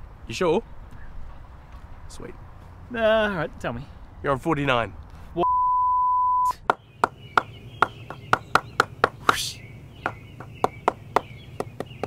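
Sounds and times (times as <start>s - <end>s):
bleep tone: 5.4s - 6.6s.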